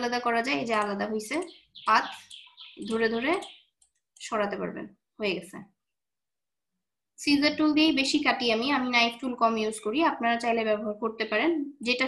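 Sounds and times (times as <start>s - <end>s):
woman speaking: 0.0s - 3.5s, 4.2s - 5.8s, 7.2s - 12.0s.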